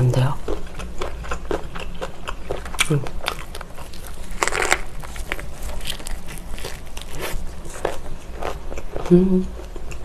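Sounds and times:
person chewing food: 0.2s - 10.0s
food crunch: 0.4s - 10.0s.

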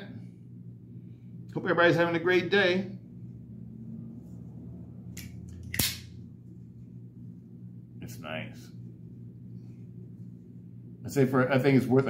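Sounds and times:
folding knife click: 5.2s - 6.0s.

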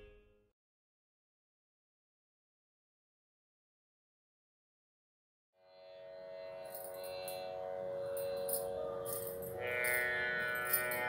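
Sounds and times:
tanpura drone with plucked strings: 5.6s - 11.0s.

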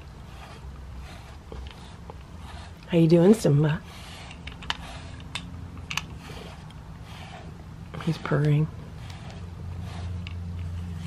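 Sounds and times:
brush clicks and scratches: 0.0s - 11.0s.

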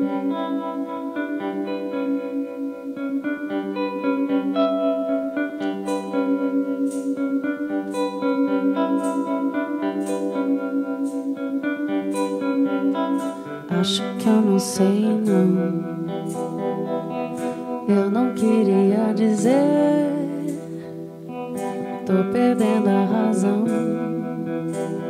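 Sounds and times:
electric guitar picked notes: 0.0s - 25.0s.

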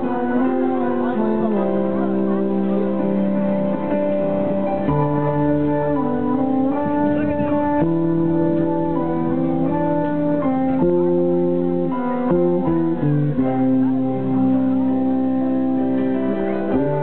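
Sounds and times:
band playing slow chords: 0.0s - 17.0s.

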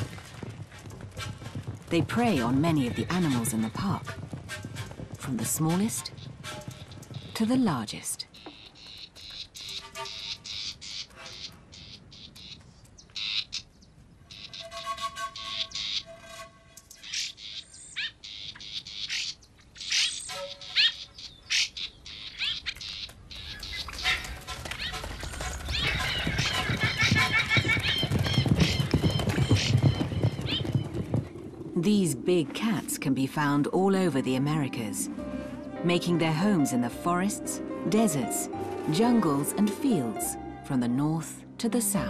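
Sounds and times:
background music: 1.2s - 8.3s, 31.7s - 42.0s
bird calls and chirps: 6.0s - 16.2s, 16.8s - 31.0s.

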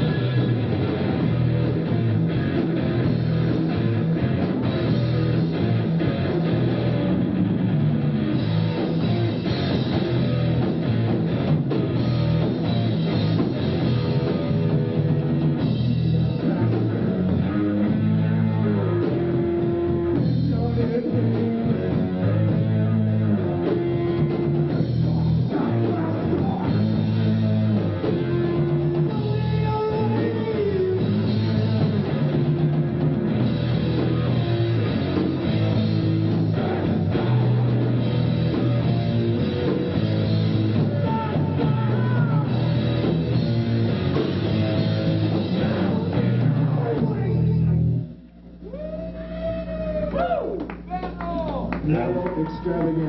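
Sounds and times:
drum kit: 0.0s - 48.1s
distorted electric guitar: 0.0s - 50.1s
bass guitar: 0.0s - 53.0s.

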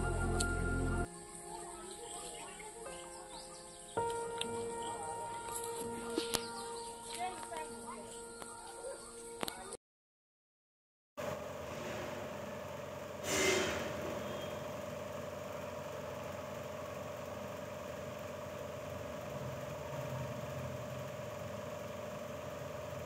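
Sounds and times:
motor humming: 0.0s - 1.1s
brief rush of noise: 11.6s - 12.6s, 13.2s - 14.2s.

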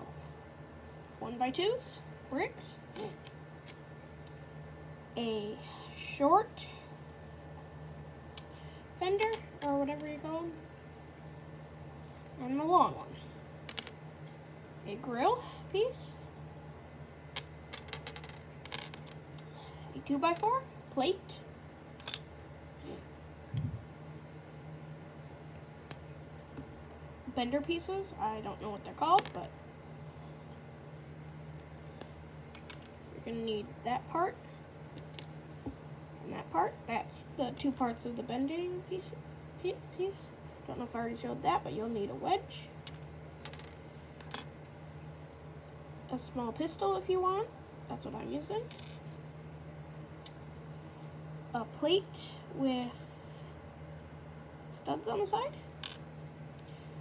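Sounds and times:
low steady hum: 0.0s - 57.0s.

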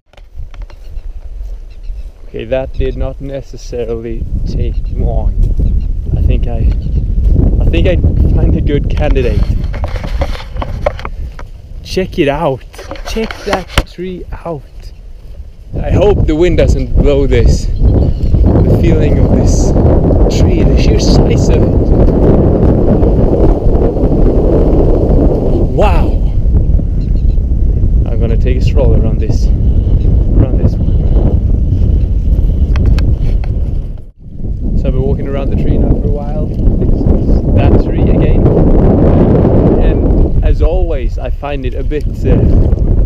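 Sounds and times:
wind buffeting microphone: 0.1s - 43.0s.

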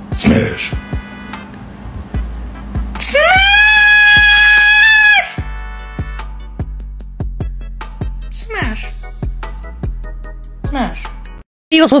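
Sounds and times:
background music with steady beat: 0.0s - 11.4s
falsetto voice shouting long note: 3.0s - 5.4s.

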